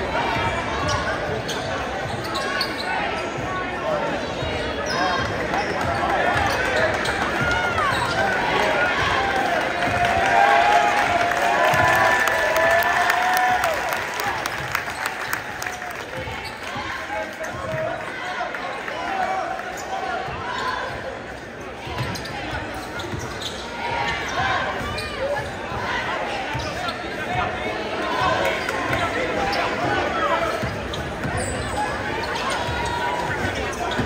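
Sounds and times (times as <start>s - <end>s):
crowd voices in echoing gym: 0.0s - 34.0s.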